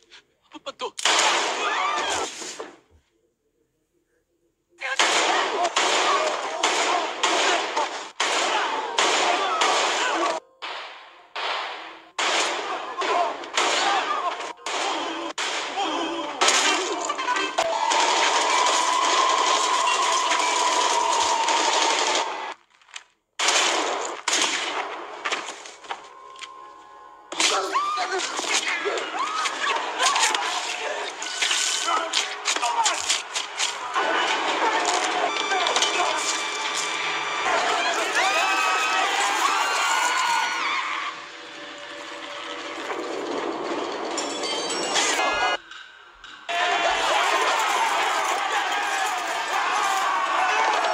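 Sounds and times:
people screaming: 1.5s - 2.3s, 5.2s - 10.4s, 12.6s - 22.6s, 25.9s - 42.9s, 44.9s - 45.6s, 46.5s - 50.9s.

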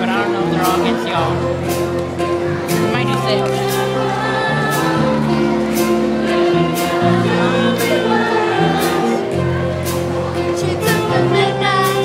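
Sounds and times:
bass notes: 0.0s - 12.0s
horn section chords: 0.0s - 12.0s
jazz band playing: 0.0s - 12.0s.

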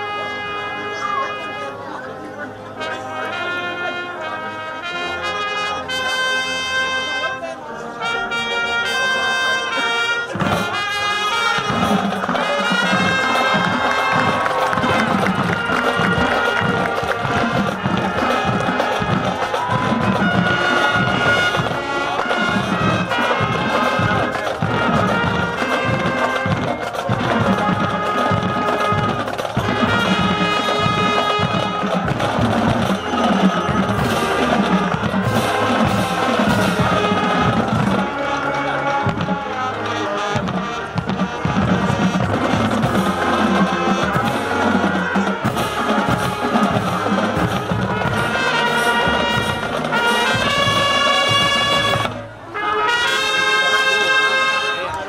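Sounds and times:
marching band with drums: 0.0s - 1.8s, 2.8s - 7.4s, 8.0s - 55.0s
trumpet and brass horn duet: 0.0s - 55.0s.

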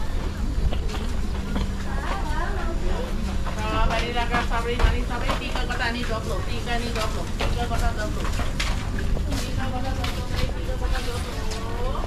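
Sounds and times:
chatter of shoppers: 0.0s - 12.0s.

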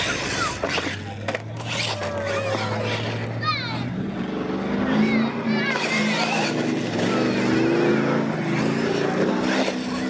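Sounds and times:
toy truck motors whining: 0.0s - 3.8s.

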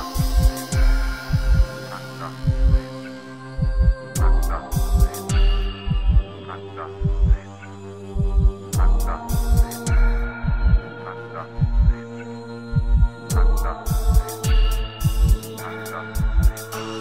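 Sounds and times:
deep drum thumps: 3.6s - 6.3s.

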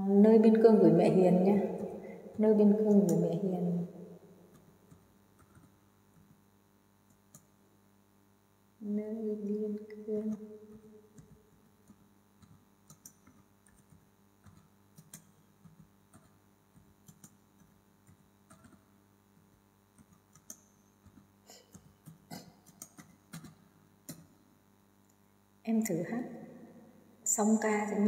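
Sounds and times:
faint small clicks and ticks: 10.3s - 24.3s.

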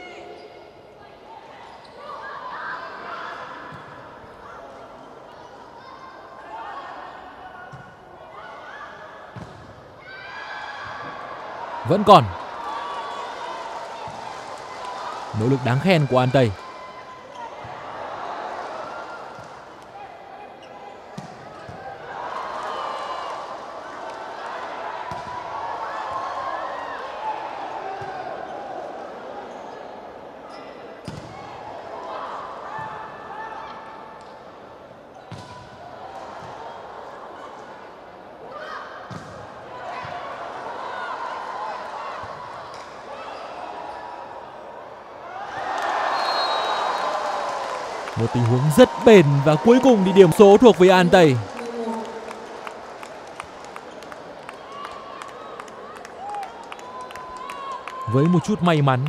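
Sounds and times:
arena crowd voices and shouts: 0.0s - 59.0s
crowd cheering loudly: 11.8s - 12.7s, 15.2s - 16.6s, 45.4s - 53.1s, 54.6s - 59.0s.

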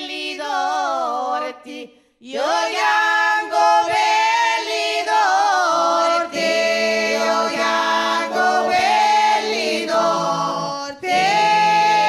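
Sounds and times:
group singing folk song in harmony: 0.0s - 12.0s.

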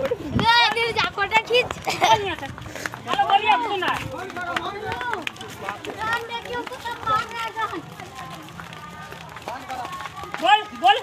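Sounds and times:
hurried footsteps on a road: 0.0s - 11.0s
people talking over one another: 0.0s - 11.0s.

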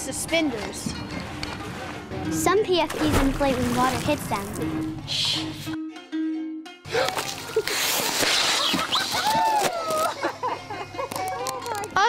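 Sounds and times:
background music: 0.0s - 12.0s
water splashing down: 2.9s - 4.7s.

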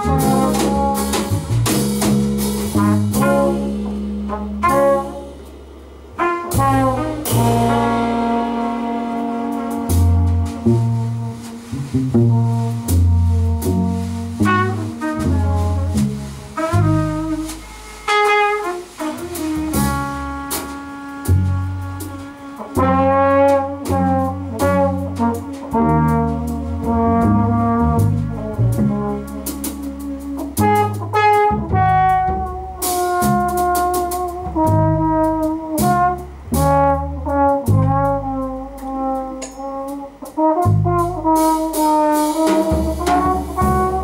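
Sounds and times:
trumpet and trombone long notes: 0.0s - 5.4s, 6.2s - 44.0s
low bass notes: 0.0s - 44.0s
cymbal strokes: 17.4s - 19.6s.

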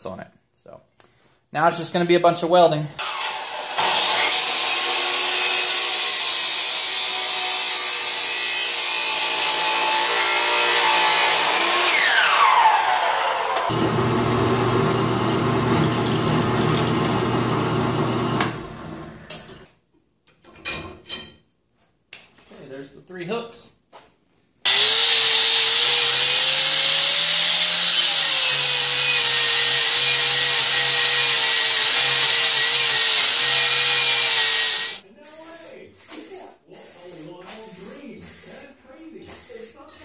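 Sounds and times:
miter saw cutting steel: 3.0s - 18.6s, 24.7s - 35.0s
drill press motor running: 13.6s - 19.2s, 24.7s - 35.0s.

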